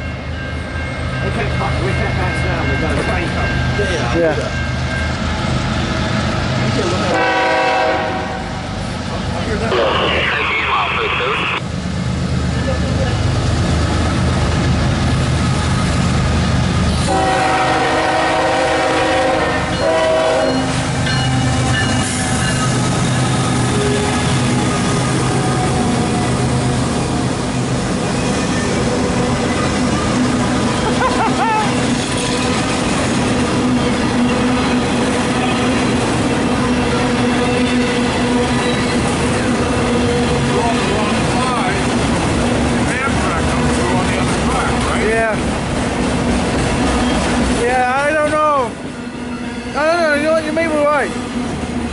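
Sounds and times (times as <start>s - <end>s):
diesel locomotives rumbling: 0.0s - 51.9s
rail cars rolling by: 0.0s - 51.9s
train horn blast: 7.1s - 8.6s, 17.0s - 20.8s.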